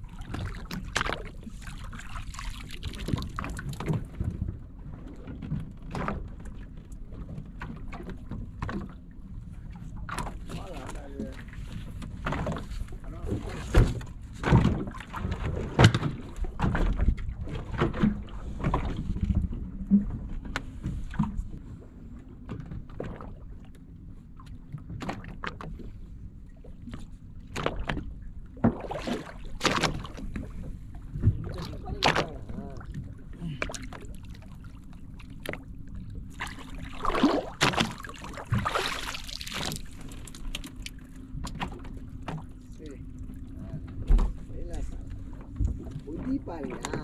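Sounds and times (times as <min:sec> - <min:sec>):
water splashing: 0:00.0 - 0:04.2, 0:27.5 - 0:47.0
low steady hum: 0:00.0 - 0:47.0
knocks on boat deck and hull: 0:05.3 - 0:06.6, 0:12.0 - 0:21.5, 0:24.9 - 0:25.8, 0:43.8 - 0:47.0.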